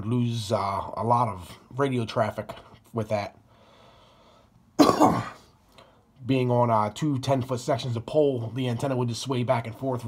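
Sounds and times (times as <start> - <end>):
man coughing: 4.8 - 5.5.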